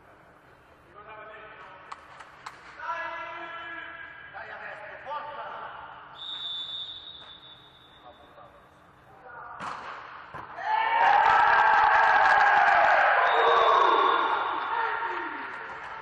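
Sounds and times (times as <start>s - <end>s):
people shouting and cheering: 10.5s - 16.0s.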